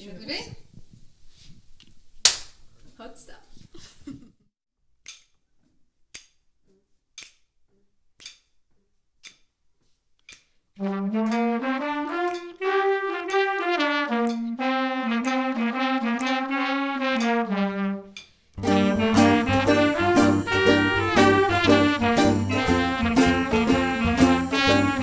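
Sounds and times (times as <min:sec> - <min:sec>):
sharp clicks marking a beat: 0:10.2 - 0:25.0
horns playing swing phrase: 0:10.8 - 0:25.0
full band with bass line: 0:18.6 - 0:25.0.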